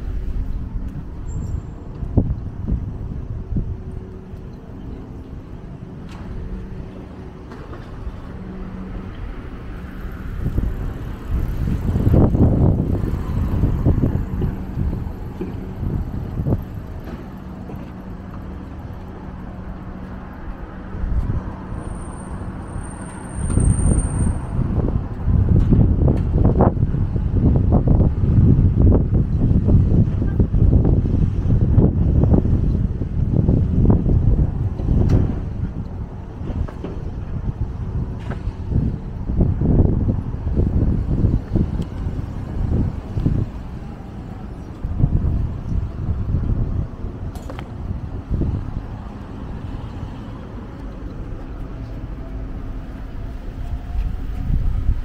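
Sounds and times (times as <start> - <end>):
traffic hum: 0.0 - 55.0
wind buffeting microphone: 0.0 - 55.0.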